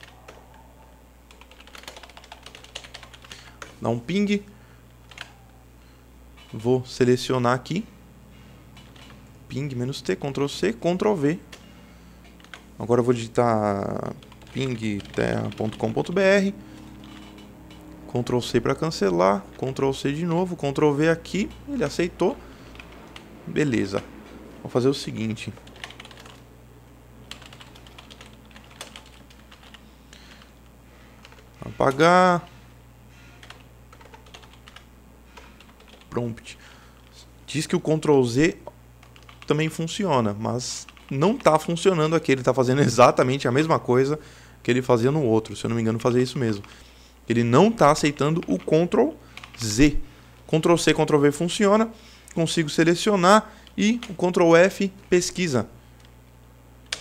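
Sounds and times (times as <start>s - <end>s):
computer keyboard typing: 0.0s - 0.6s, 1.3s - 3.8s, 5.0s - 5.4s, 8.8s - 9.3s, 12.3s - 12.7s, 14.0s - 18.6s, 21.4s - 23.3s, 25.2s - 26.5s, 27.2s - 30.5s, 31.2s - 32.0s, 33.3s - 36.1s, 39.0s - 39.6s, 40.8s - 41.8s, 48.1s - 49.7s
faint low hum: 0.0s - 57.0s.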